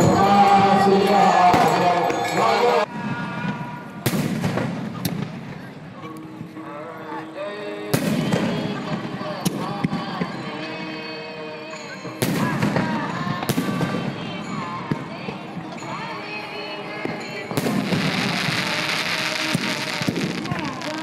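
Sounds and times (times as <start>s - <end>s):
fireworks bangs: 2.9s - 5.7s, 17.0s - 21.0s
fireworks crackling: 17.0s - 21.0s.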